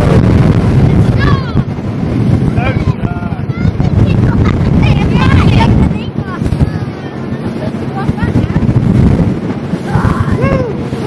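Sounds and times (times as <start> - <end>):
boat engine: 0.0 - 11.0
water noise: 0.0 - 11.0
wind buffeting microphone: 0.0 - 11.0.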